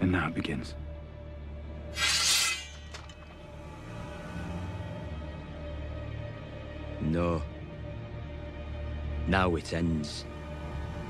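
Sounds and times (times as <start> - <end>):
sword drawn from scabbard: 2.0 - 3.4
low film score drone: 2.7 - 11.0.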